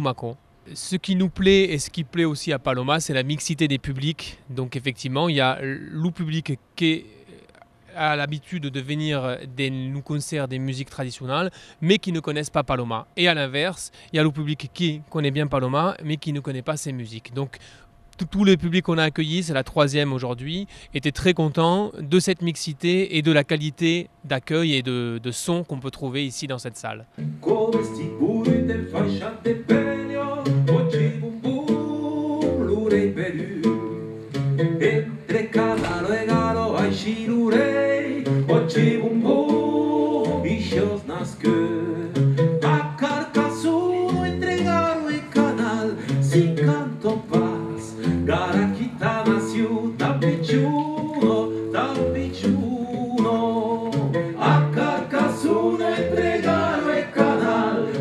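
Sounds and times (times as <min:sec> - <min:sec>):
person singing: 0:27.4 - 0:34.0, 0:34.8 - 0:58.0
drums keeping a beat: 0:38.4 - 0:58.0.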